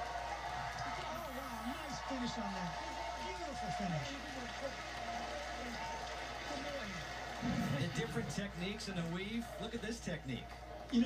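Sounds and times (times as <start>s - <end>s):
tv broadcast background noise: 0.0s - 11.0s.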